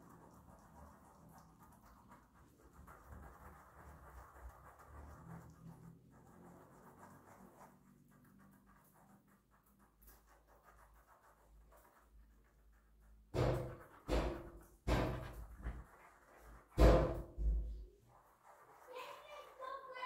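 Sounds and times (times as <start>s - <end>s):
sponge rubbing wet skin: 0.0s - 17.2s, 17.9s - 20.0s.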